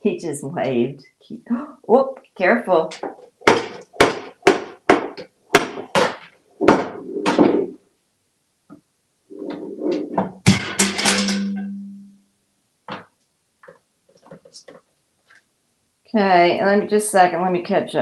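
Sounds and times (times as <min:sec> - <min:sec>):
parrot knocking tin pail: 0:10.5 - 0:11.7
metal pail clanging on floor: 0:10.5 - 0:11.9.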